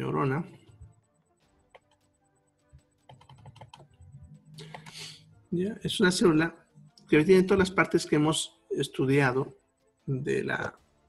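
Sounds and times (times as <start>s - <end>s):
computer keyboard clicking: 1.7s - 2.0s, 3.1s - 4.0s, 4.6s - 5.0s.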